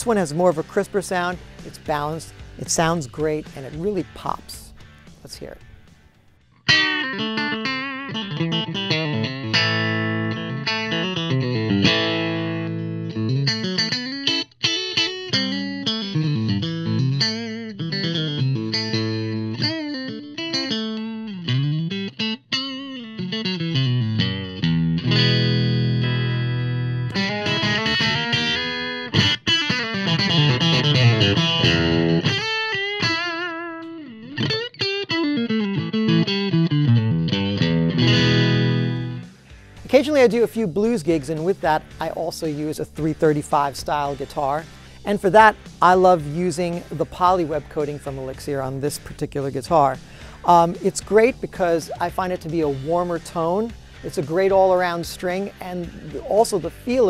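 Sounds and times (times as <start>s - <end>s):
electric guitar through amp: 0.0s - 57.0s.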